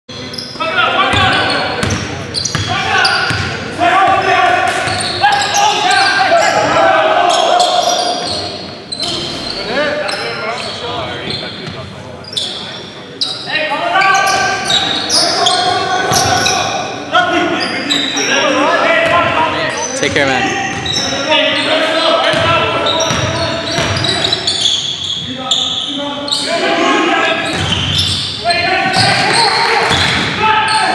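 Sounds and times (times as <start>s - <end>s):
players' voices calling out: 0.2s - 30.9s.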